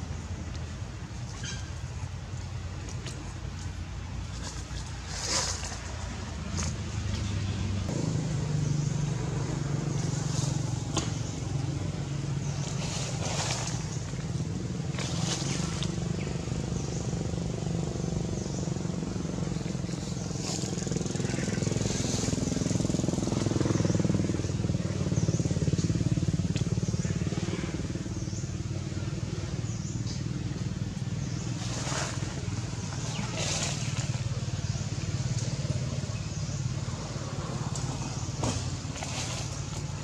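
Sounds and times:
motor engine humming: 0.0s - 40.0s.

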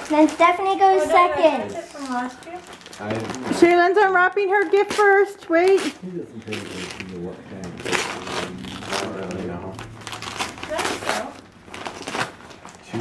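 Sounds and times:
wrapping paper tearing: 0.0s - 13.0s.

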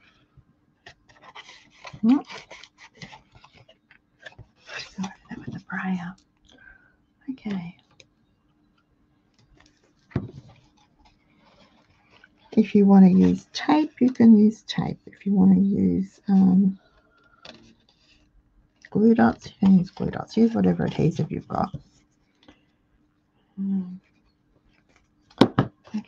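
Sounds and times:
faint steady hum: 0.0s - 26.0s
cardstock being folded: 0.8s - 5.5s
paper crinkles and clicks: 0.8s - 5.6s.

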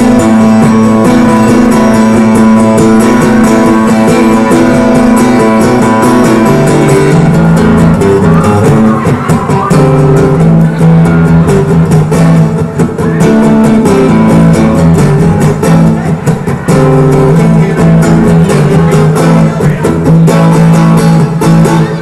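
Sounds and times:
acoustic guitar strumming: 0.0s - 22.0s.

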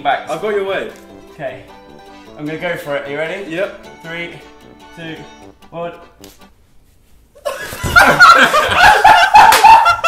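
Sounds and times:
woman laughing: 7.4s - 10.0s.

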